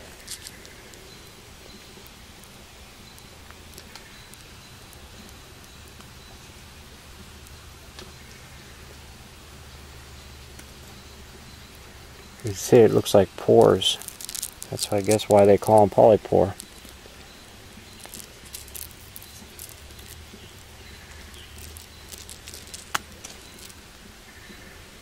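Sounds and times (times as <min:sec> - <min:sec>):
faint hiss: 0:00.0 - 0:25.0
hand handling rustles: 0:12.4 - 0:17.1, 0:17.9 - 0:23.9.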